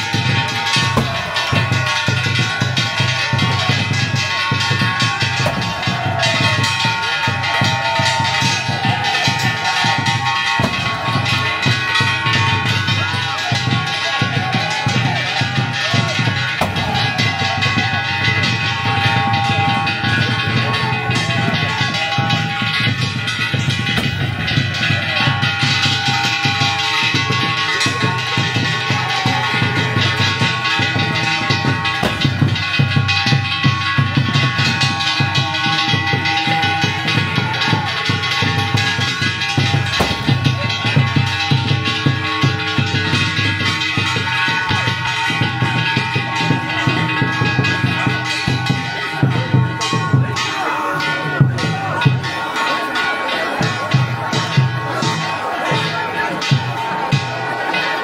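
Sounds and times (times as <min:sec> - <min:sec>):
sustained ringing tones: 0:00.0 - 0:53.6
drumming: 0:00.0 - 0:58.0.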